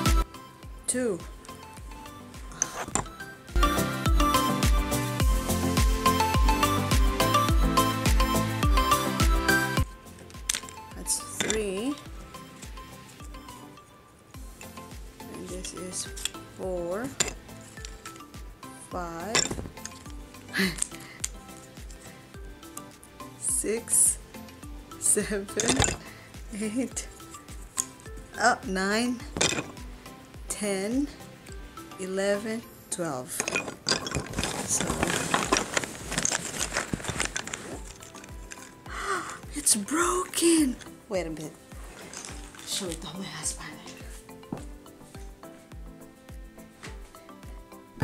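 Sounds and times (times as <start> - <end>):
background music with steady beat: 0.0 - 48.0
wooden puzzle pieces clicking: 10.2 - 10.8, 19.3 - 22.1, 33.4 - 39.4.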